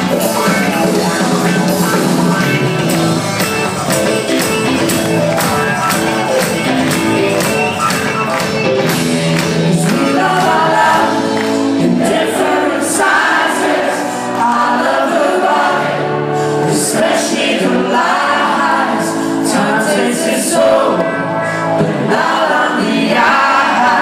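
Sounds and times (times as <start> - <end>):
drums: 0.0 - 15.0
electric guitars: 0.0 - 24.0
keyboards: 0.0 - 24.0
sung vocals: 9.0 - 24.0.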